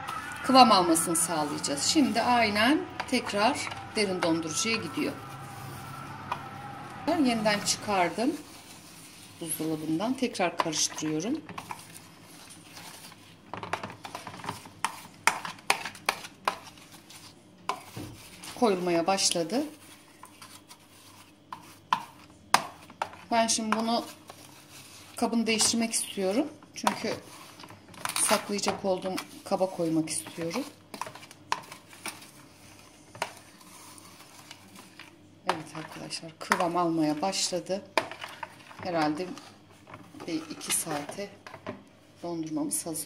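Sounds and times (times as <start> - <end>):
spoon scraping ice cream: 0.0 - 13.4, 14.0 - 41.4.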